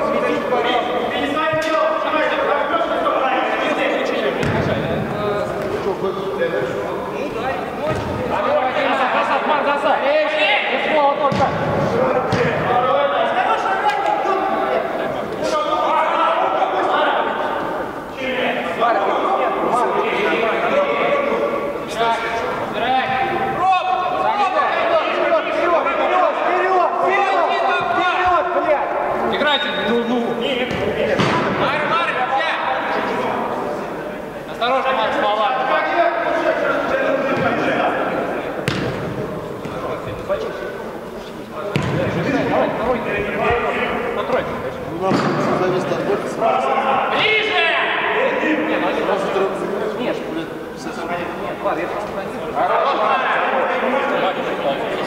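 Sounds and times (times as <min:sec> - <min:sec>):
men calling and talking: 0:00.0 - 0:55.0
football being kicked: 0:04.4 - 0:04.8, 0:11.3 - 0:12.6, 0:38.6 - 0:39.8, 0:41.7 - 0:42.1.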